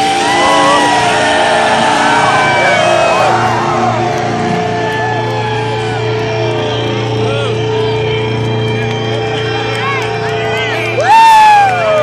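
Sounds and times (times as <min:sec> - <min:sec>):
crowd shouting and whooping: 0:00.0 - 0:12.0
droning chord from loudspeakers: 0:00.0 - 0:12.0.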